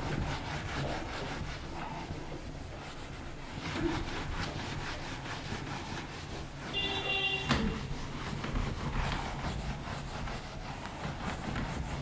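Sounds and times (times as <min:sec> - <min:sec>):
eraser rubbing on whiteboard: 0:00.0 - 0:12.0.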